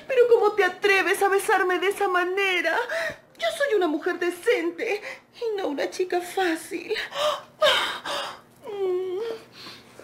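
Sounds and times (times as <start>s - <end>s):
woman gasping and breathing hard: 7.0s - 8.4s.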